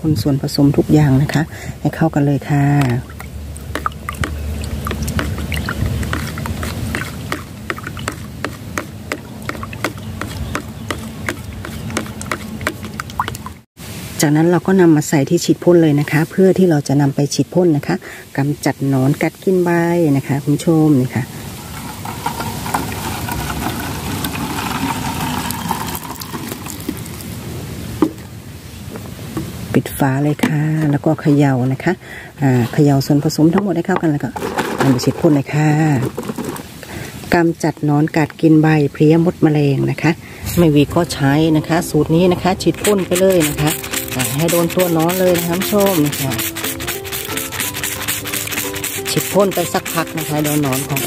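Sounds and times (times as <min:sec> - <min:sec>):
liquid pouring into plastic bottle: 0:02.8 - 0:08.3, 0:21.6 - 0:27.4, 0:45.0 - 0:49.1
background music with held notes: 0:41.0 - 0:51.0
spray bottle hissing spurts: 0:42.8 - 0:51.0.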